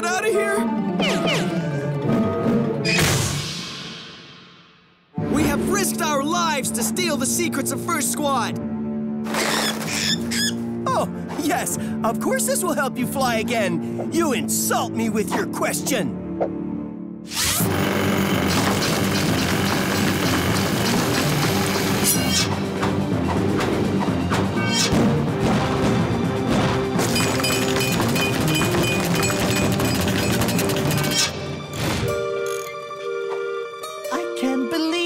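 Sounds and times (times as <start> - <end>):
cartoon action music: 0.0 - 4.4, 17.3 - 32.4.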